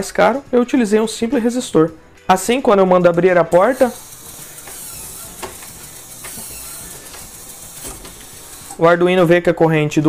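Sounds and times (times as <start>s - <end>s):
servo motor running: 3.6s - 8.8s.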